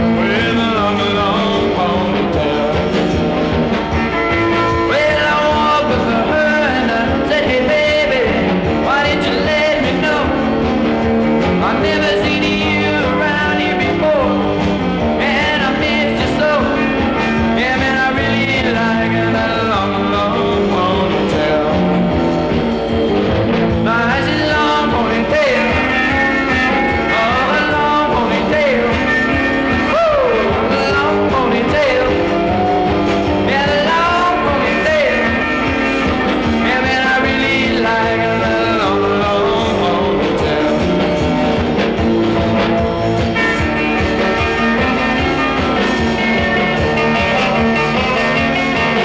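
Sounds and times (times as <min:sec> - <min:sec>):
rock and roll band music: 0:00.0 - 0:49.0.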